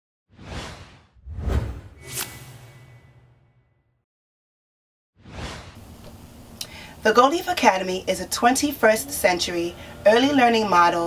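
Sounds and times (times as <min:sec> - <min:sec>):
whoosh sound effects: 0:00.4 - 0:03.5, 0:05.2 - 0:05.8.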